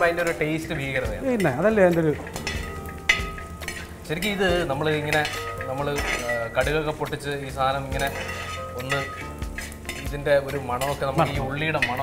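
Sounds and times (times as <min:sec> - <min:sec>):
light sizzle: 0:00.0 - 0:12.0
metal spatula scraping a pan: 0:00.0 - 0:12.0.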